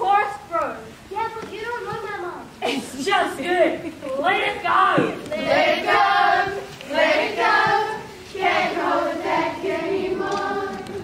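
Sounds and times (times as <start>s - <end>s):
group singing together: 5.2s - 11.0s.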